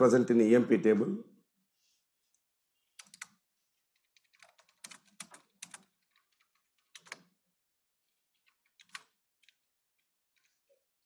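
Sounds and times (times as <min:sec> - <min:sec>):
computer keyboard typing: 0:03.0 - 0:03.4, 0:04.1 - 0:07.4, 0:08.4 - 0:09.6.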